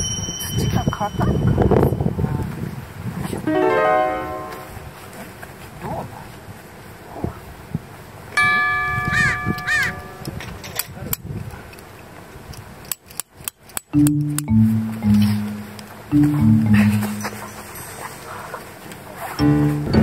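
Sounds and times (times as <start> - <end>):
wobbling electronic chime tone: 14.0 - 17.6
low blocky synth notes: 14.0 - 17.7, 19.4 - 20.0.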